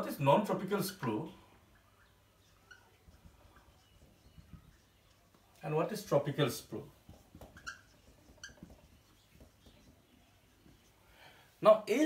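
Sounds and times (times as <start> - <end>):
whiteboard marker squeaking: 1.8 - 11.0.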